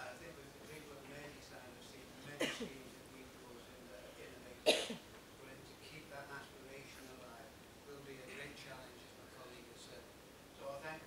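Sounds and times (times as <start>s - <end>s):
short sharp cough: 4.7s - 5.0s.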